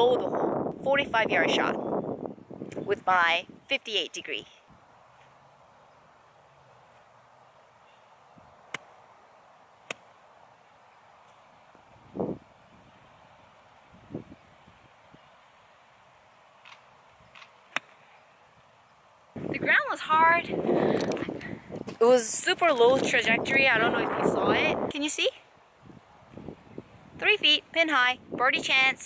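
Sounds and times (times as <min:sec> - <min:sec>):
golf club striking ball: 0:09.8 - 0:10.1
faint sharp clicks: 0:16.6 - 0:18.0.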